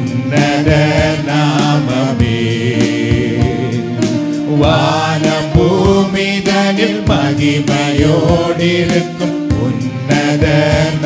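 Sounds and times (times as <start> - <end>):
music with steady beat: 0.0 - 11.0
man singing into microphone: 0.2 - 11.0.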